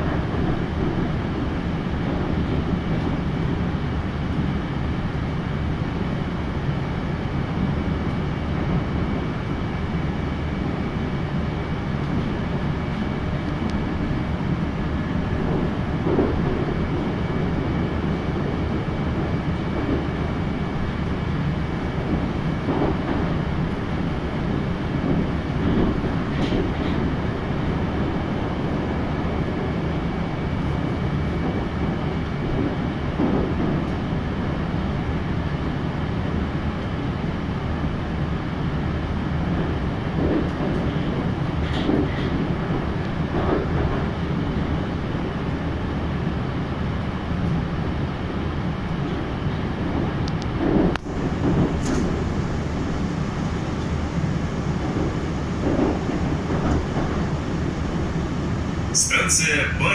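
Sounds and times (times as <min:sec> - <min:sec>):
train wheels rumbling on rails: 0:00.0 - 0:59.9.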